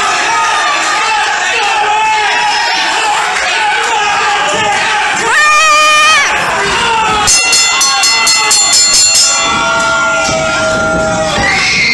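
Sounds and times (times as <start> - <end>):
ring bell struck quickly: 7.3 - 10.1
held steady note: 7.3 - 10.4.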